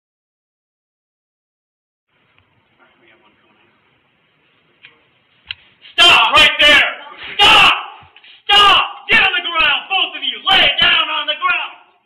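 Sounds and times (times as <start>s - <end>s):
person shouting: 6.0s - 11.9s.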